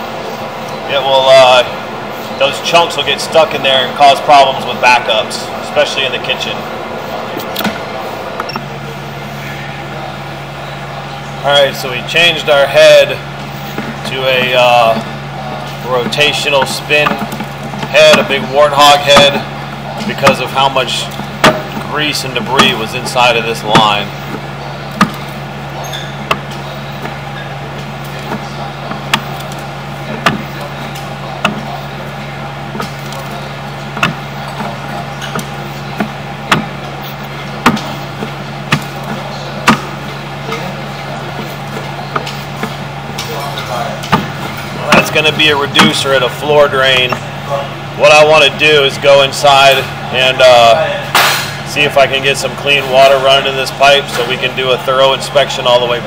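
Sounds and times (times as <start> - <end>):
sewer jetting equipment droning: 0.0 - 56.0
steady low hum: 0.0 - 56.0
sharp knocks: 20.0 - 25.3, 27.8 - 31.8, 32.7 - 36.9, 37.6 - 40.6, 44.0 - 46.1.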